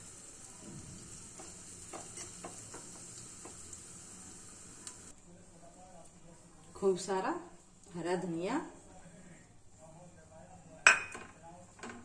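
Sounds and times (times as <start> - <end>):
oil sizzling: 0.0 - 5.1.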